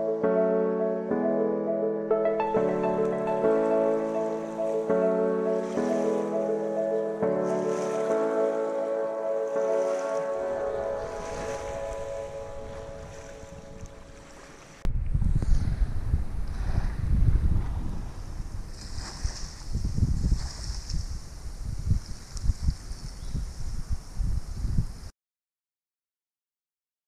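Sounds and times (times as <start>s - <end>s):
background music: 0.0s - 14.6s
small waves lapping on sand: 9.4s - 14.8s, 17.7s - 23.0s
wind buffeting microphone: 9.9s - 25.1s.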